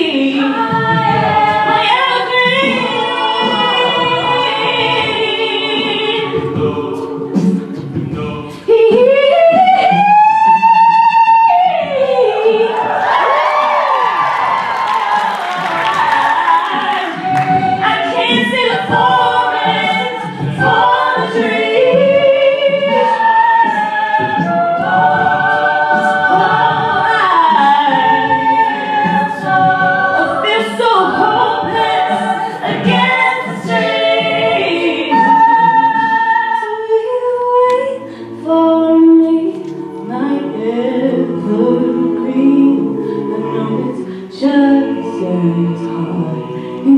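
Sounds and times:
a cappella group singing: 0:00.0 - 0:46.9.

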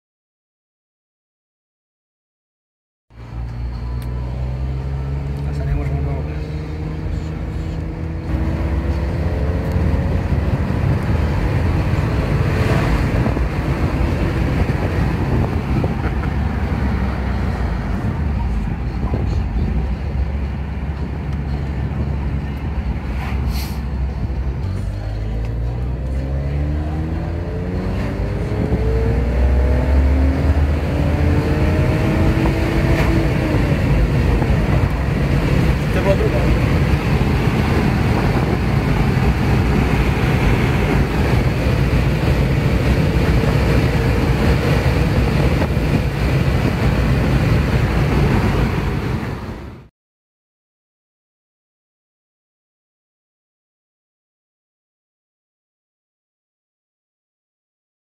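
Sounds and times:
car engine accelerating: 0:03.1 - 0:49.9
road noise: 0:03.1 - 0:49.9.

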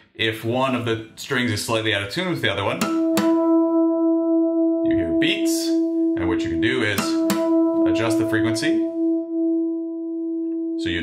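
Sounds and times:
acoustic guitar harmonics ringing: 0:02.8 - 0:11.0.

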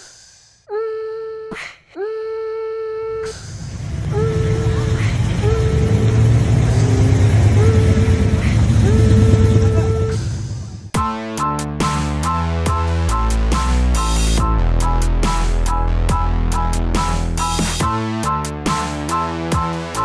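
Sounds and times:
car exhaust rumble driving past: 0:03.3 - 0:11.0.

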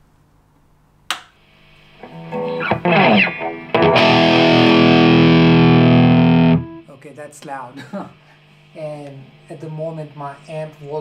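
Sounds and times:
amplifier hiss: 0:00.0 - 0:11.0
low mains hum: 0:00.0 - 0:11.0
amp switch click: 0:01.1 - 0:01.4.

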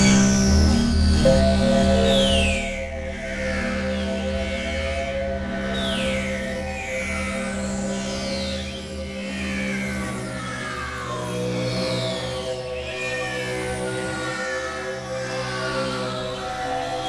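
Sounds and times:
pulsing synth bass: 0:00.0 - 0:03.3
low synthesizer drone: 0:00.0 - 0:07.6
high gliding whistling tones: 0:01.2 - 0:03.2.

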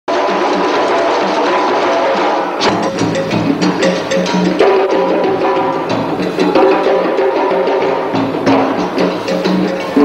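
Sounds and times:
djembe hand drums playing: 0:00.1 - 0:10.0.

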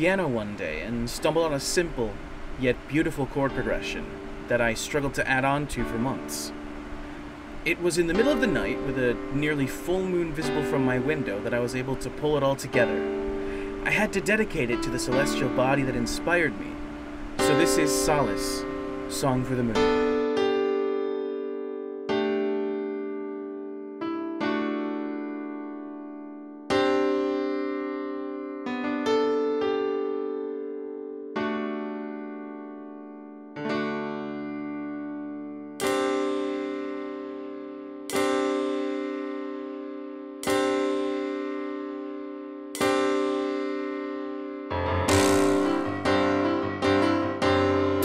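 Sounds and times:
slow piano chords: 0:00.0 - 0:48.0.

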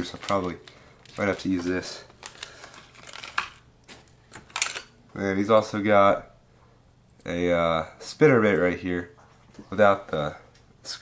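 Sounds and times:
plastic clicks and crinkling: 0:00.0 - 0:04.9.

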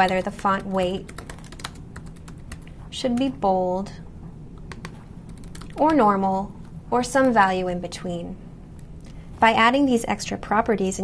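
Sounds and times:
computer keyboard typing: 0:00.0 - 0:03.4, 0:04.6 - 0:06.1.

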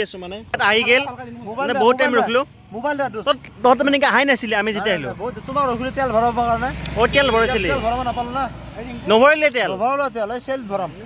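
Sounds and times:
man talking: 0:00.0 - 0:11.0
road traffic rumble: 0:00.0 - 0:11.0.

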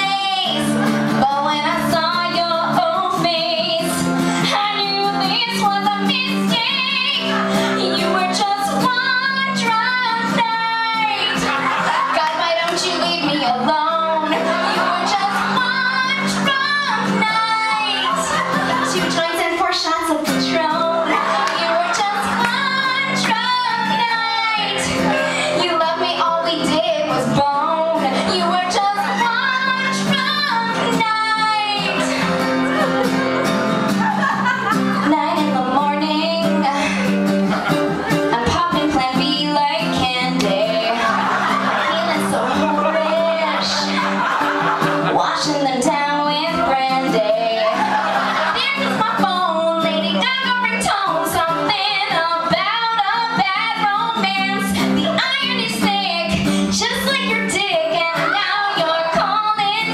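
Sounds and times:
woman singing: 0:00.0 - 0:32.9, 0:34.7 - 0:44.3, 0:44.9 - 0:59.9
acoustic guitar: 0:00.0 - 0:59.9.

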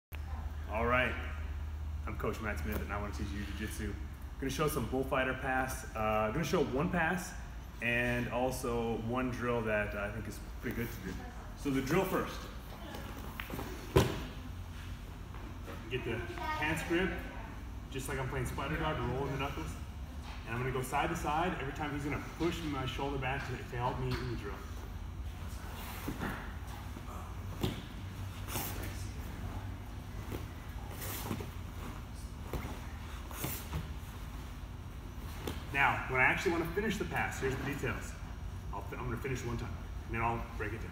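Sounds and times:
steady low hum: 0:00.1 - 0:40.9.

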